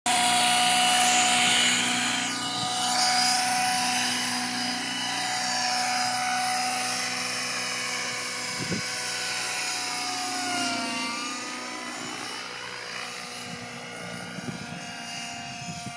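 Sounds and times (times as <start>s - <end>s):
model helicopter engine and rotor: 0.1s - 15.9s.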